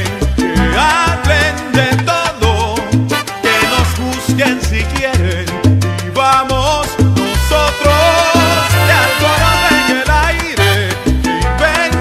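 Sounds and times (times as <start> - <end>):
salsa music: 0.0 - 12.0.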